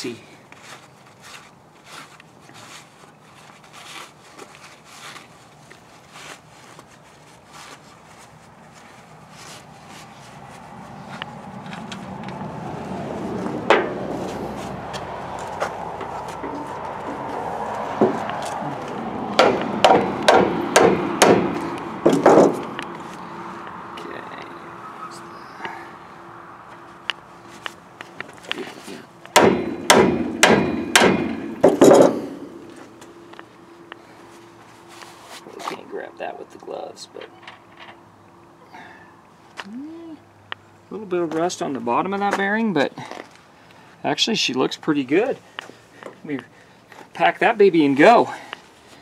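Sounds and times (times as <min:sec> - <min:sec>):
background noise: 0:00.0 - 0:49.0
gloved hands rubbing: 0:00.5 - 0:12.2
sharp knocks: 0:13.6 - 0:14.0, 0:18.0 - 0:18.3, 0:19.3 - 0:22.9, 0:29.3 - 0:32.7.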